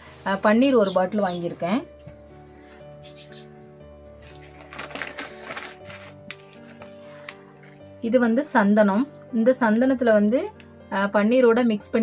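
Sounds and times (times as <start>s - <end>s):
soft background music: 0.0s - 12.0s
packets and plastic bag crackling: 4.1s - 8.0s.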